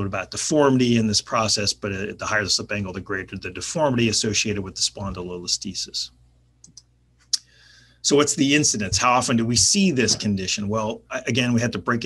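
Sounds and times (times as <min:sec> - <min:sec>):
computer mouse click: 0:06.6 - 0:06.9.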